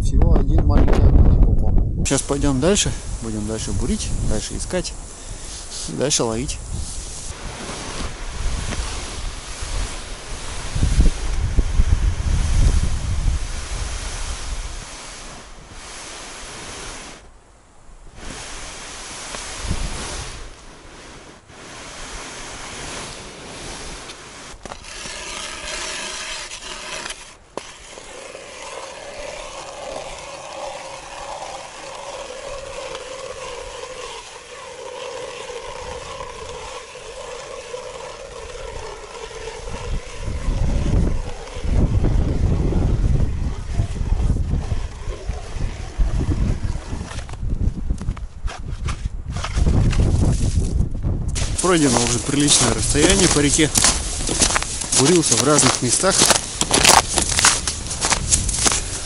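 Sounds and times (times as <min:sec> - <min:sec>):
wind buffeting microphone: 0:00.0 - 0:16.0, 0:18.1 - 0:20.6, 0:30.9 - 0:59.0
ice auger grinding through ice: 0:21.6 - 0:47.4, 0:48.5 - 0:50.7, 0:51.4 - 0:59.0.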